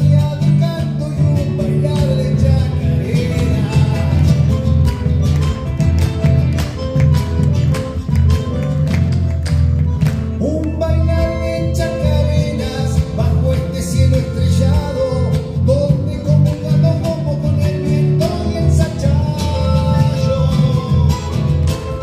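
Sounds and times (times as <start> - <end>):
man singing: 0.0 - 4.9, 10.3 - 22.0
acoustic guitar: 0.0 - 22.0
cajon drum rhythm: 0.0 - 22.0.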